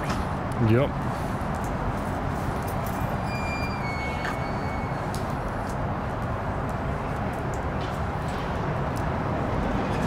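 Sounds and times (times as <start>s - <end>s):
low rumble of traffic: 0.0s - 10.0s
faint high-pitched squeal: 3.0s - 5.0s.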